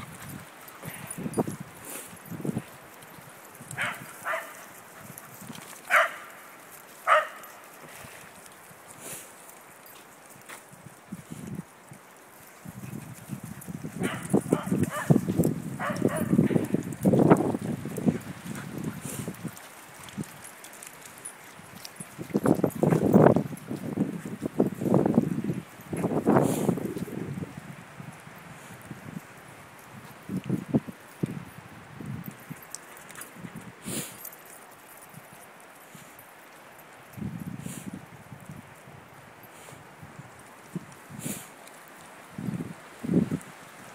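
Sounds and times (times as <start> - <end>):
dogs barking and yipping: 0.0 - 7.8, 12.3 - 23.2
dogs scuffling: 0.0 - 27.1.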